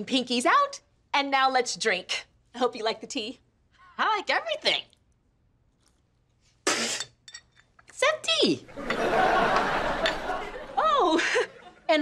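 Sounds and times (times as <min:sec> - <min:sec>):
teacups clinking on saucers: 0:08.8 - 0:10.7.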